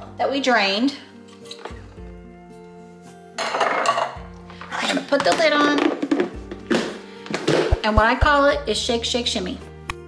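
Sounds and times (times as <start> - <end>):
soft background music: 0.0 - 10.0
metal can and plastic container clatter: 4.8 - 7.8.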